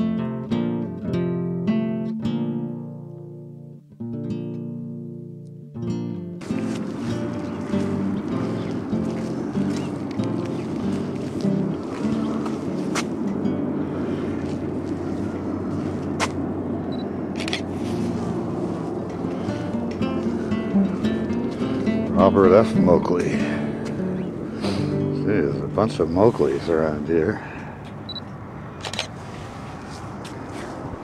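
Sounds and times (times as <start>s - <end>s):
acoustic guitar music: 0.0s - 28.1s.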